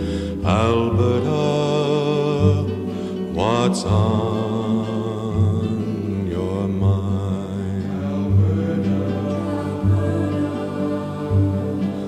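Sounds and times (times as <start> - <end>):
instrumental accompaniment: 0.0 - 12.0
man singing folk ballad: 0.0 - 12.0.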